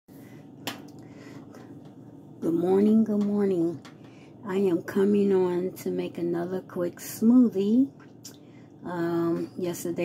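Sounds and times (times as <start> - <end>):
faint low room hum: 0.1 - 10.0.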